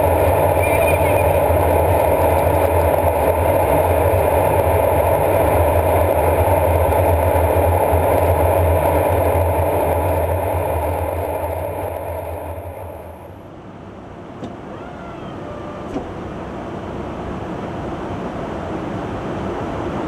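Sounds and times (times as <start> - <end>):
aircraft engine drone: 0.0 - 20.0.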